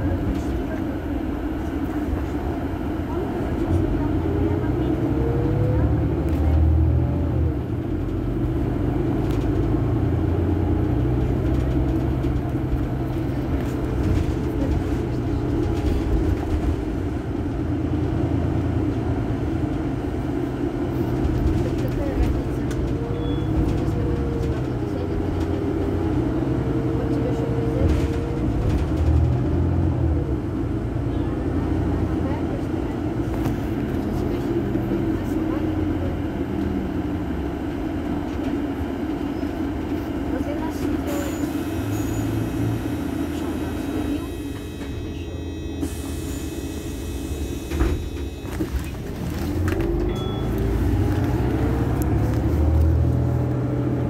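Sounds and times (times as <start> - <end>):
people's voices: 0.0 - 7.9, 8.6 - 17.9, 18.8 - 46.2
bus diesel engine idling: 0.0 - 54.0.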